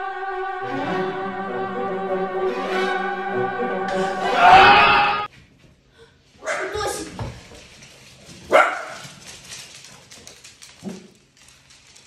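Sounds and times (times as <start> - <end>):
dog barking: 8.5 - 9.0.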